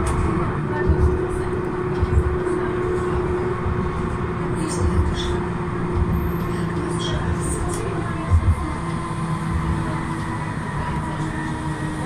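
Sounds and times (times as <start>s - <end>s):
low thumps: 0.0s - 10.2s
tram electric hum: 0.0s - 12.0s
wheels rumbling on rails: 0.0s - 12.0s.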